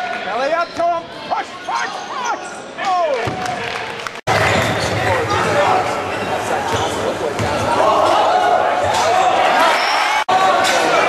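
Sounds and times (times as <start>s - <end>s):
crowd voices in echoing hall: 0.0s - 11.0s.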